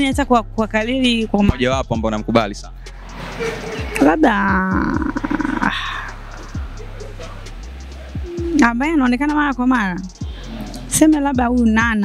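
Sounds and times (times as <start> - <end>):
wordless vocal swooping: 2.6 - 9.4, 10.0 - 11.1.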